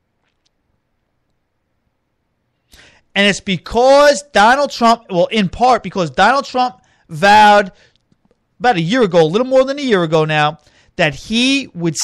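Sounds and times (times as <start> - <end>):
intake of breath: 2.7 - 3.1, 10.6 - 11.0.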